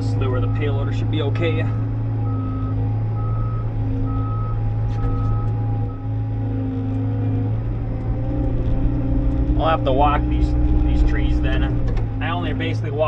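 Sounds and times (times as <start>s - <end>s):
diesel engine drone: 0.0s - 13.0s
backup alarm beeping: 2.1s - 6.2s.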